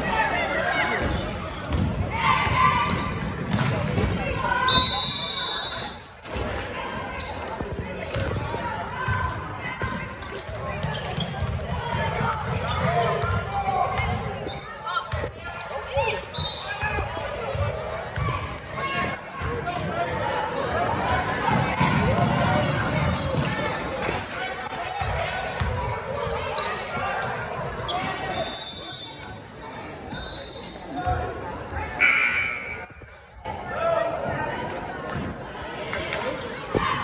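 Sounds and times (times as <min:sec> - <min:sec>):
spectators' voices: 0:00.0 - 0:37.0
referee's whistle: 0:04.6 - 0:06.0, 0:16.3 - 0:17.0, 0:28.2 - 0:29.3, 0:30.1 - 0:30.8, 0:32.0 - 0:32.9.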